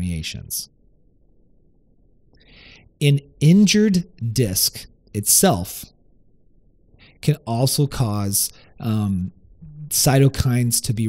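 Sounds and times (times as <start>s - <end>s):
intake of breath: 2.4s - 2.9s
person talking: 7.2s - 11.0s.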